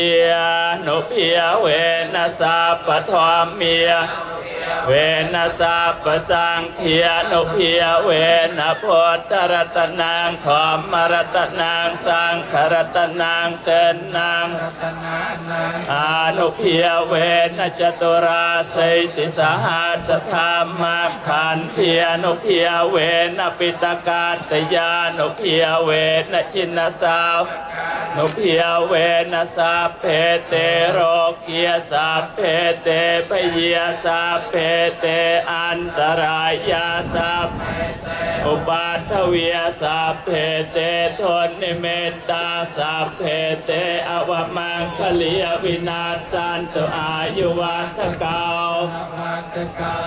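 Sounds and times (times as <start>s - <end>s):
monks chanting in unison: 0.0s - 50.0s.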